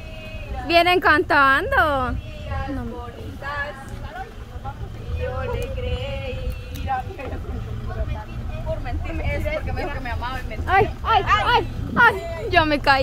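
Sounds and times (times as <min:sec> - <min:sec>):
girls singing and calling out: 0:00.0 - 0:13.0
truck engine rumbling: 0:00.0 - 0:13.0.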